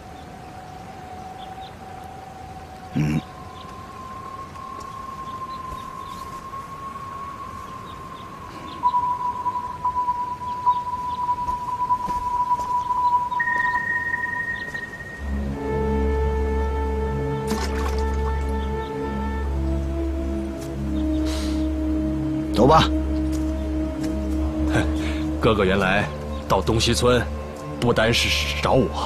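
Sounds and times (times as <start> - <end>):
drone of held tones: 0.0 - 25.5.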